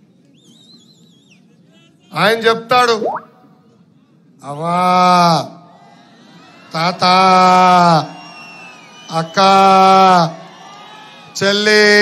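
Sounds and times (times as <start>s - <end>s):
man speaking over public address: 2.0s - 3.5s.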